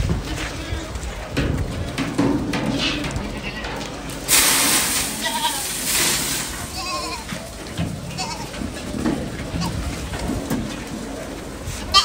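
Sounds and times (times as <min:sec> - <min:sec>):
goats bleating: 0:02.7 - 0:04.0, 0:05.0 - 0:08.8
grain feed poured into trough: 0:04.1 - 0:07.4.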